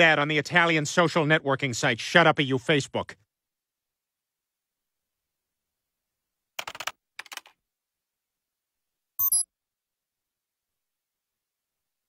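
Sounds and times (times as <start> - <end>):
computer keyboard typing: 6.6 - 7.6.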